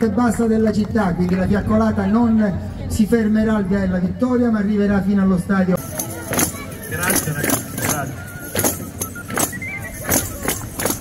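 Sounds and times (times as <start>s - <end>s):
tambourines jingling: 5.8s - 11.0s.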